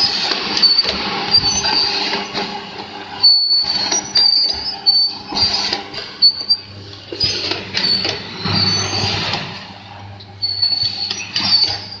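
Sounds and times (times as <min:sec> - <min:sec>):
machine hum with high whine: 0:00.0 - 0:12.0.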